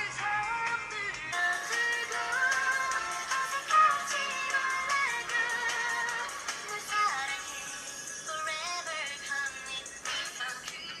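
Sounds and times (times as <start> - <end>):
song with sung vocals: 0.0 - 11.0.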